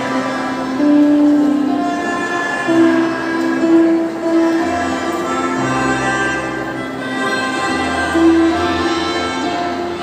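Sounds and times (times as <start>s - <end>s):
melodicas playing in harmony: 0.0s - 10.0s.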